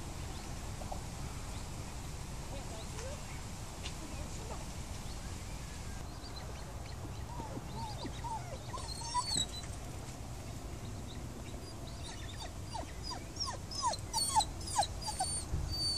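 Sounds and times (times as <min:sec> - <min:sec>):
dog whining and whimpering: 0:07.3 - 0:09.7, 0:11.6 - 0:15.9.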